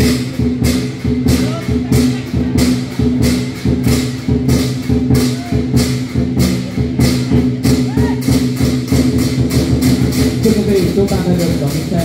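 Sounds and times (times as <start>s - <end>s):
cymbals and drum beating: 0.0s - 12.0s.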